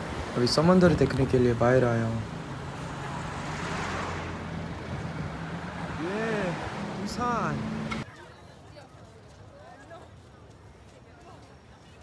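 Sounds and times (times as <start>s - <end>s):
road traffic hum: 0.0s - 11.6s
vehicle passing: 0.1s - 8.0s.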